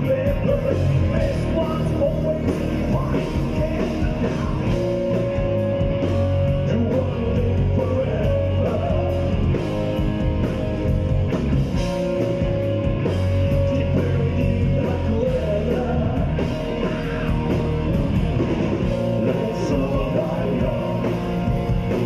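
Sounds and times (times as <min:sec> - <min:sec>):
live rock band playing: 0:00.0 - 0:22.0.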